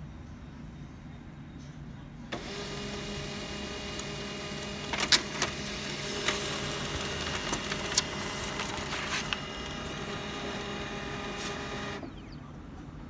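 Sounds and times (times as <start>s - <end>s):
printer sharp clicks: 2.4s - 12.2s
laser printer running: 2.4s - 12.4s.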